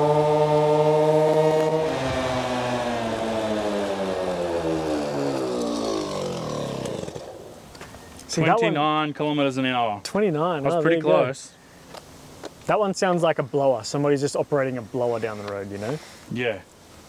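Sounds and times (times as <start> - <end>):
scooter two-stroke engine buzzing: 0.0 - 7.7.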